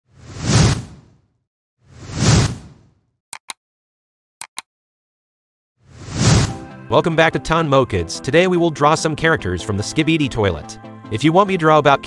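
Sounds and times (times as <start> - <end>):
whoosh sound effect: 5.9 - 6.6.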